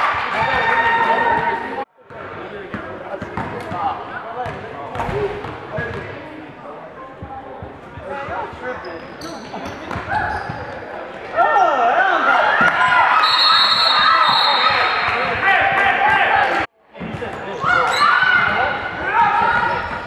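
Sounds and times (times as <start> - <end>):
players and spectators shouting: 11.3 - 16.7, 17.5 - 20.0.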